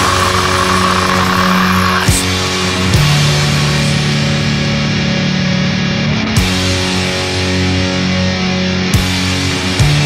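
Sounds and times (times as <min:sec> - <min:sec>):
gliding scream-like sound: 0:00.0 - 0:02.3
distorted guitar chord: 0:00.0 - 0:06.8.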